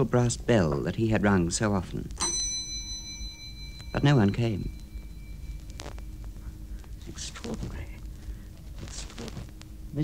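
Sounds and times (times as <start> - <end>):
brass desk bell ringing: 2.2 - 6.7.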